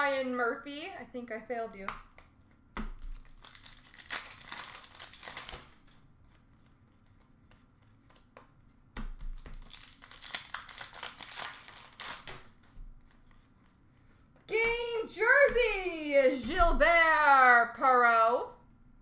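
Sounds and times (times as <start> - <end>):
card pack wrappers crinkling and tearing: 2.2 - 6.7, 9.3 - 13.5.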